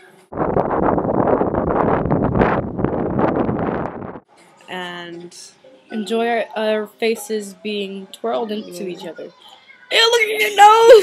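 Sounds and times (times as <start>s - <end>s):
wind buffeting microphone: 0.3s - 4.3s.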